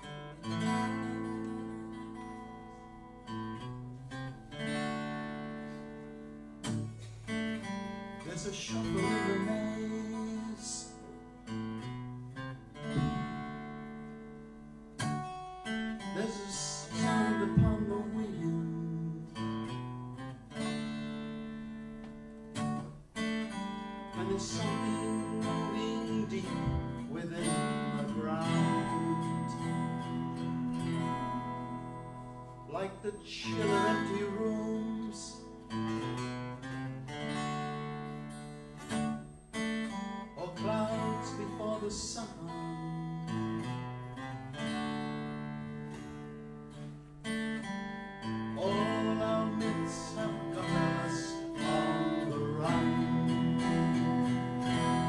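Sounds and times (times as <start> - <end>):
acoustic guitars strumming: 0.0 - 55.0.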